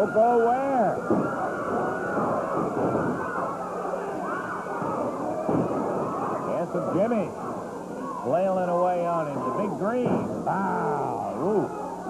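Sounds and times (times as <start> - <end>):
crowd shouting and yelling: 0.0 - 12.0.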